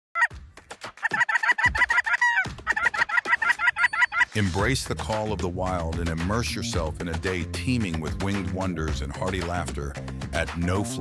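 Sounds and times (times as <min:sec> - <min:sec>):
clucking goose calls: 0:01.0 - 0:04.4.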